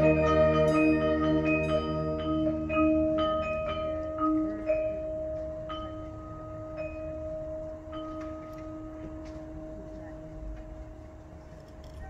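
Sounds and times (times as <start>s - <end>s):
bell-like mallet percussion notes: 0.0s - 11.4s
wind ensemble held tone: 0.0s - 12.0s.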